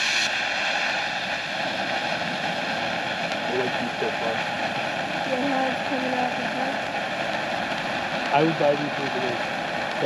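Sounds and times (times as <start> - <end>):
firework fountain hissing: 0.0 - 10.0.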